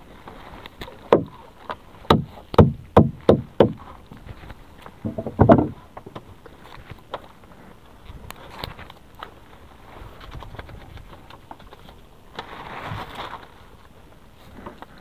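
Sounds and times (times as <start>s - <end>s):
hollow knocks against boat hull: 1.1s - 1.4s, 2.1s - 3.8s, 5.0s - 5.8s.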